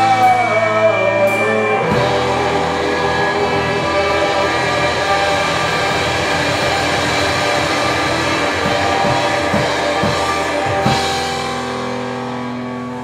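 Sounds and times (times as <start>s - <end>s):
bass: 0.0s - 13.0s
distorted electric guitars: 0.0s - 13.0s.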